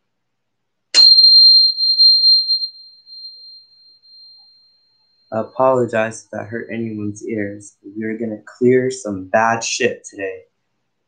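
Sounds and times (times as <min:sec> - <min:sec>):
tuning fork ringing: 0:01.0 - 0:05.8.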